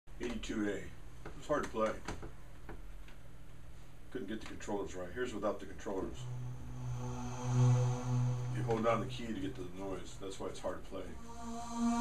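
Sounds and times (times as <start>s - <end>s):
low steady hum: 4.9s - 12.0s.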